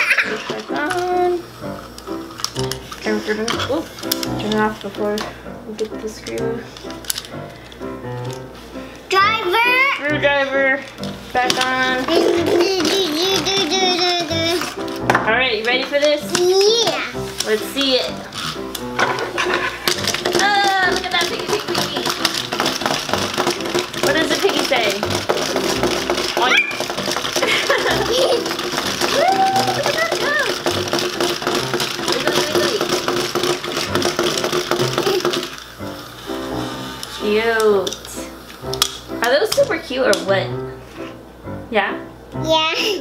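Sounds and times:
toy motor hum: 0:00.0 - 0:04.7, 0:11.6 - 0:15.0, 0:15.6 - 0:19.0, 0:19.8 - 0:38.2
fast clicking of walking toys: 0:00.0 - 0:08.5, 0:09.1 - 0:40.3.

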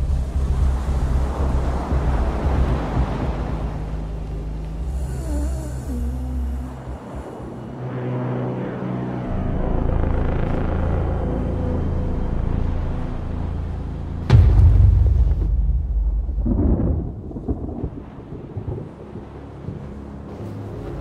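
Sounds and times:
thunder crack and rumble: 0:00.0 - 0:03.8, 0:14.3 - 0:19.4
low droning soundtrack: 0:00.0 - 0:21.0.

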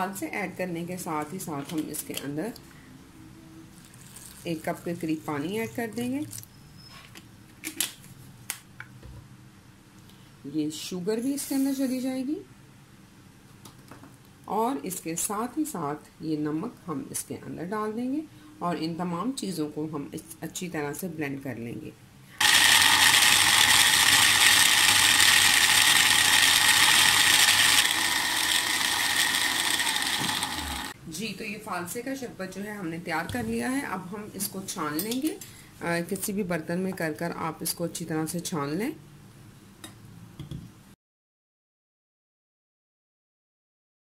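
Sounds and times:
blender motor running: 0:22.4 - 0:31.0.

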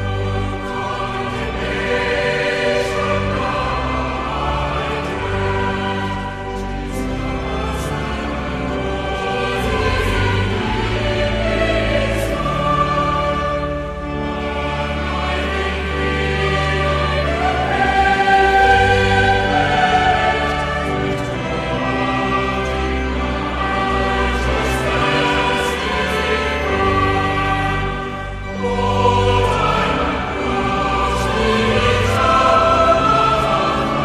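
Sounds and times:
choir singing sustained chords: 0:00.0 - 0:34.0.

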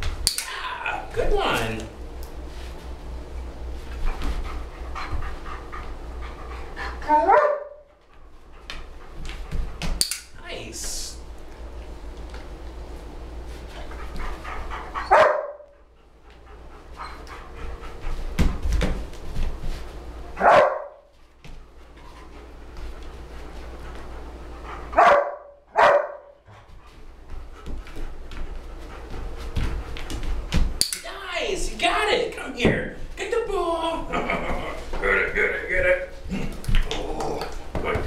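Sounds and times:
dog barking: 0:07.2 - 0:07.8, 0:15.1 - 0:15.7, 0:20.4 - 0:21.0, 0:25.0 - 0:26.3.

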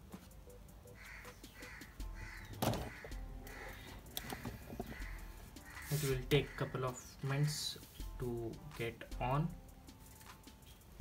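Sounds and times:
bird calling: 0:00.9 - 0:07.2.

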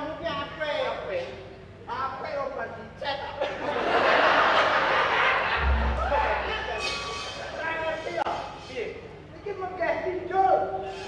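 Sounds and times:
deep gong stroke ringing: 0:05.6 - 0:06.9
gamelan music: 0:05.6 - 0:07.5.

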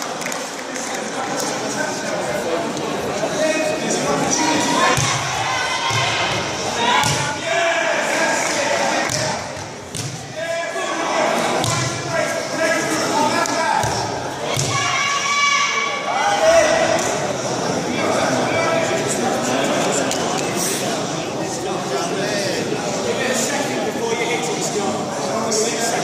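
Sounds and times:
voices and shouts in a hall: 0:00.0 - 0:26.0.

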